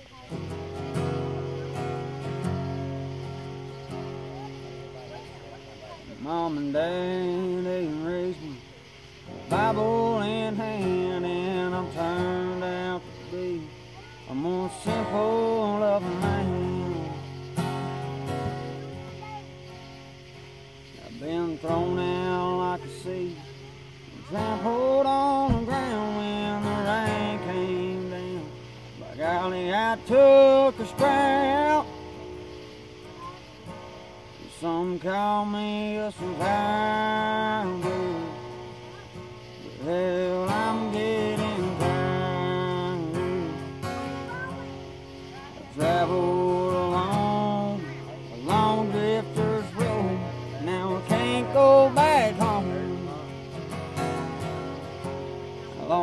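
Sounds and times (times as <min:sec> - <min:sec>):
strummed acoustic guitar: 0:00.0 - 0:56.0
man singing: 0:06.1 - 0:19.4, 0:21.0 - 0:32.0, 0:34.4 - 0:38.4, 0:39.6 - 0:44.6, 0:45.7 - 0:53.6, 0:55.8 - 0:56.0.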